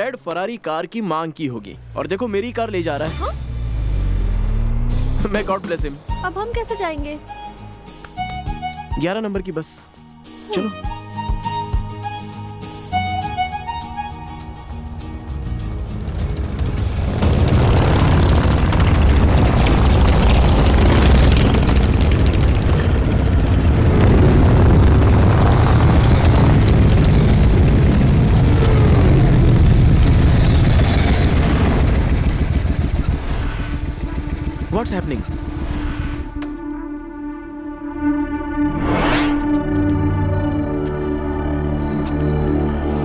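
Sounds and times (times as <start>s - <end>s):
motorcycle engines: 1.5s - 5.3s, 15.4s - 36.4s
background music: 4.7s - 19.4s, 34.1s - 43.0s.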